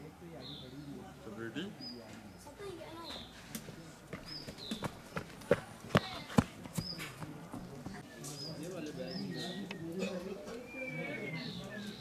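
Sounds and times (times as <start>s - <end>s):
bird chirping: 4.2s - 5.0s, 6.8s - 12.0s.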